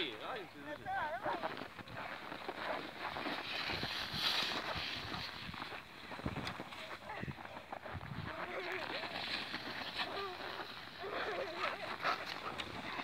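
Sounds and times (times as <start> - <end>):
sled runners scraping snow: 0.1 - 13.0
footsteps on packed snow: 0.2 - 13.0.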